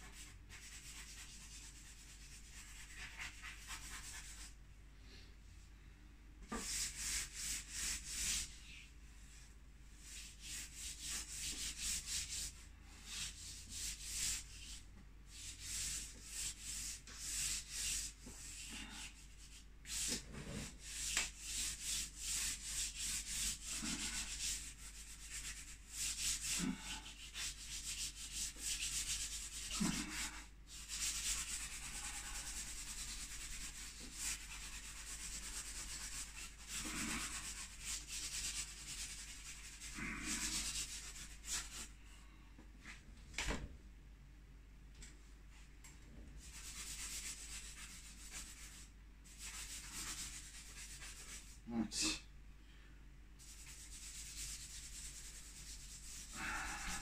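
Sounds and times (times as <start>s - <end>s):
charcoal scratching across paper: 0.0s - 4.5s, 10.0s - 41.9s, 46.4s - 51.6s, 53.4s - 57.0s.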